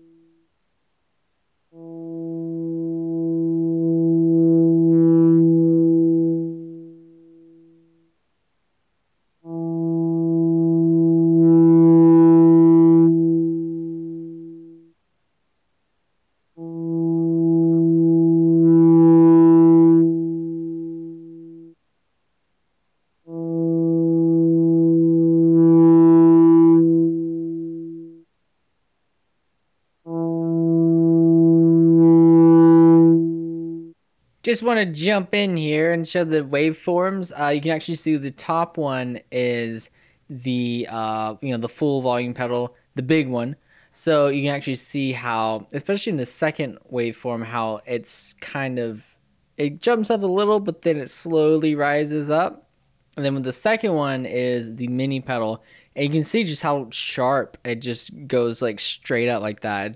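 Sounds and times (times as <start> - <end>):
electric guitar note swelling: 1.8 - 7.5, 9.5 - 14.9, 16.6 - 21.7, 23.3 - 28.2, 30.1 - 33.9.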